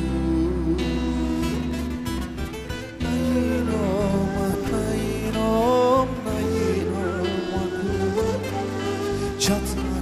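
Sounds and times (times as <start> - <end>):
acoustic guitar playing: 0.0 - 10.0
long-necked lute playing: 0.0 - 10.0.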